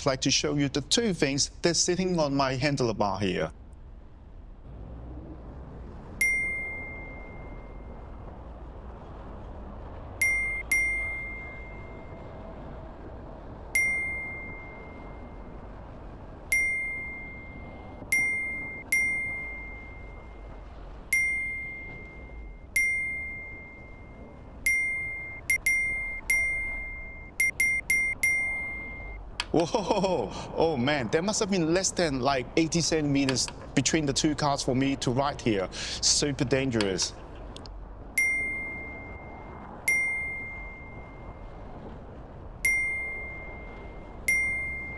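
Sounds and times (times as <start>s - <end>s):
street and traffic noise: 0.0s - 44.9s
bell-like ding sound effect: 6.2s - 7.9s, 13.8s - 15.2s, 21.1s - 29.2s, 42.7s - 44.9s.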